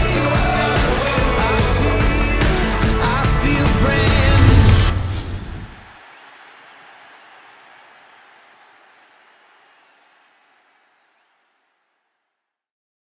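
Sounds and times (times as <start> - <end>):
crowd applause and cheering: 0.0 - 11.8.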